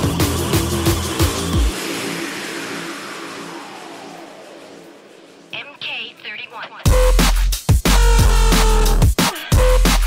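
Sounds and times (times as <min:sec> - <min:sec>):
hissing noise sweep: 0:01.6 - 0:05.7.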